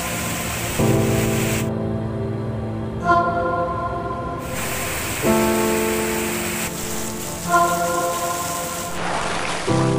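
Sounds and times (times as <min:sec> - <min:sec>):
heavy rain on paving: 0:00.0 - 0:01.7, 0:04.5 - 0:09.9
background music of held notes: 0:00.1 - 0:09.9.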